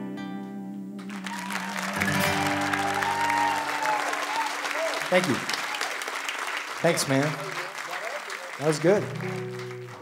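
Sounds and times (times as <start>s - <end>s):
audience applause: 1.0s - 10.0s
whistle over clapping: 1.0s - 10.0s.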